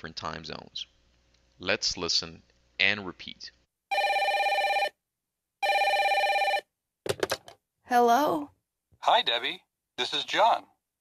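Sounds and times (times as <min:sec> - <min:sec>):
telephone ringing: 0:03.9 - 0:05.0, 0:05.6 - 0:06.7.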